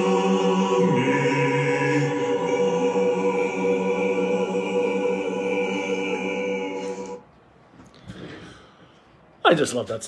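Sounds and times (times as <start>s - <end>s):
church choir singing: 0.0s - 7.3s.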